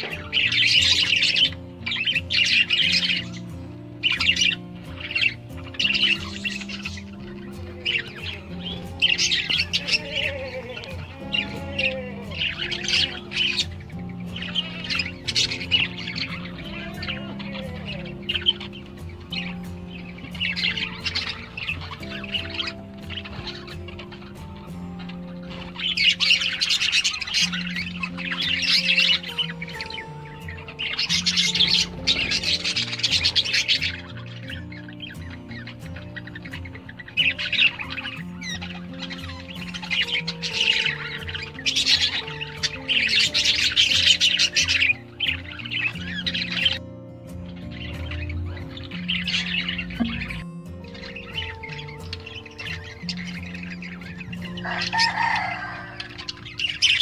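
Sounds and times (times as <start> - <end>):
background music with held low notes: 0.0 - 57.0
budgerigars chattering and chirping: 0.0 - 57.0.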